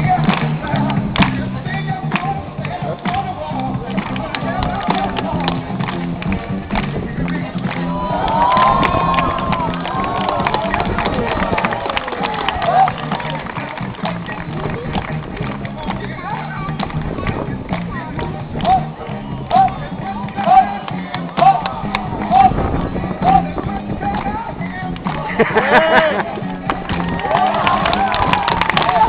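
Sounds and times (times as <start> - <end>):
crowd chatter: 0.0 - 29.0
music with repeating bass line: 0.0 - 29.0
crowd calling out: 7.6 - 14.2, 18.5 - 29.0.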